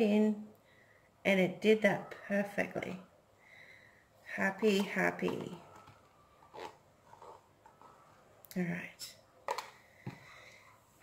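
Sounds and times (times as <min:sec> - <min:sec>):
handling plastic paint cups: 0:04.4 - 0:08.5, 0:09.4 - 0:10.6.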